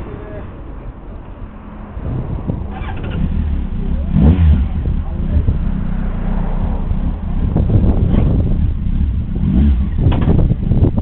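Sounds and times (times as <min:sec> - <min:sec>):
motorcycle engine running: 0:02.0 - 0:11.0.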